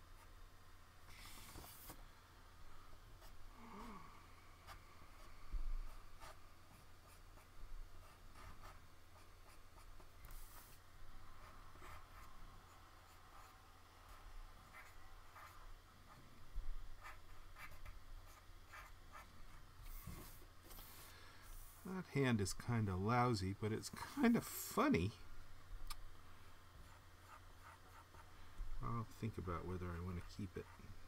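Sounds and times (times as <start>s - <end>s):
low electrical hum: 0.0s - 31.0s
pen scratching on paper: 5.9s - 10.8s, 11.4s - 16.2s, 17.0s - 20.4s, 26.8s - 28.3s, 29.8s - 31.0s.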